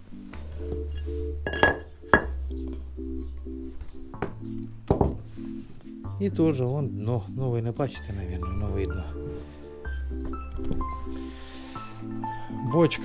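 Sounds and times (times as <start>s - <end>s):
background music with chords: 0.0s - 13.0s.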